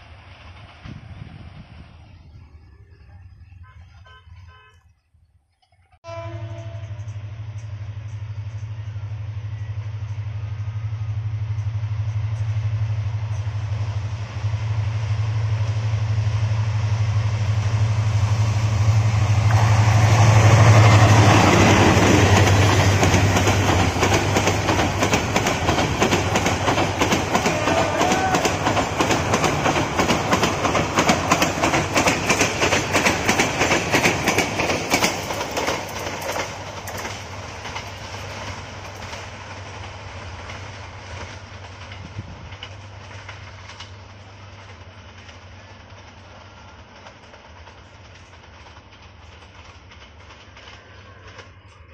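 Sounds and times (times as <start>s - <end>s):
diesel locomotive engine drone: 0.0s - 51.9s
train wheels clattering over rail joints: 19.5s - 51.9s.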